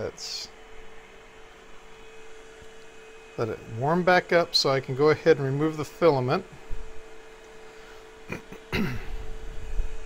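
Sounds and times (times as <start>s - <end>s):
faint steady hum: 0.0s - 10.0s
man clearing his throat: 8.2s - 9.3s.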